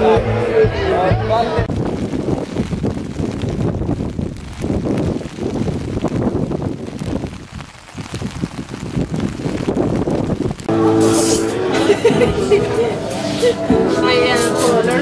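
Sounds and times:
wind buffeting microphone: 1.6s - 10.7s.

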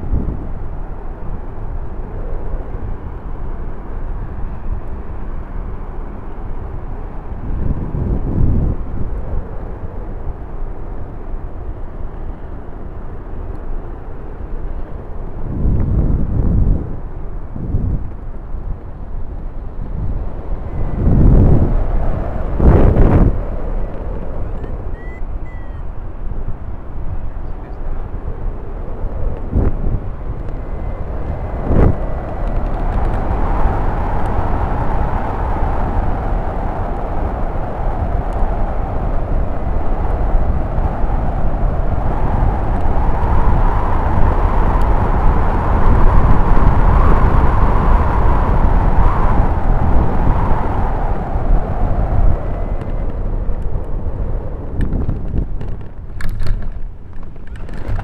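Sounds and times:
wind buffeting camera: 0.0s - 58.0s.

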